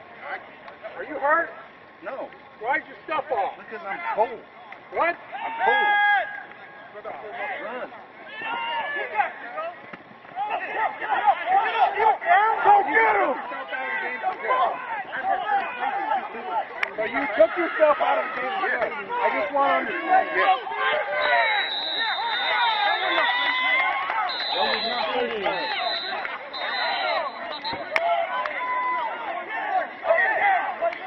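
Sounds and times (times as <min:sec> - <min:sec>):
men shouting: 0:02.8 - 0:09.8, 0:10.4 - 0:31.0.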